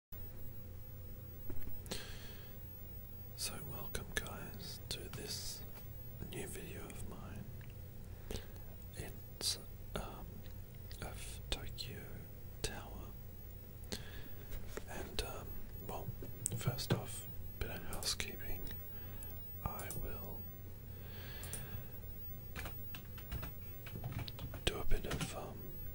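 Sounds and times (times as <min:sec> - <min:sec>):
low steady hum: 0:00.2 - 0:25.9
man whispering: 0:03.4 - 0:07.6, 0:08.3 - 0:13.2, 0:14.5 - 0:18.8, 0:19.6 - 0:20.5, 0:24.5 - 0:25.9.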